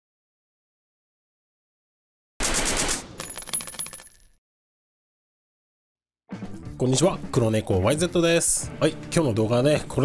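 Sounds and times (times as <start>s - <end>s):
shell casings clinking on floor: 3.2s - 4.4s.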